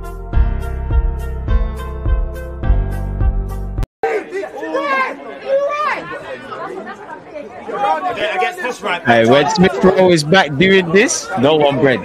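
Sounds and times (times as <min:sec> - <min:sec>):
intro music with steady beat: 0:00.0 - 0:03.8
people chattering: 0:04.0 - 0:12.0.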